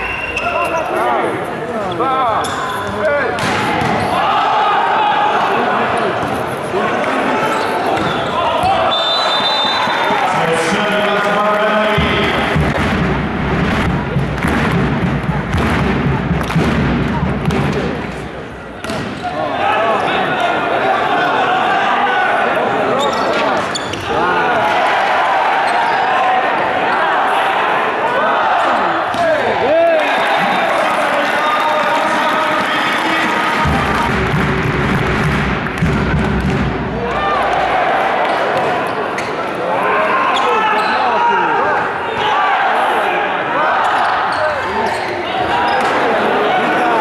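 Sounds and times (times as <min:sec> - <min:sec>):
crowd voices: 0:00.0 - 0:47.0
shoes squeaking on sports floor: 0:07.5 - 0:10.4, 0:23.0 - 0:24.1.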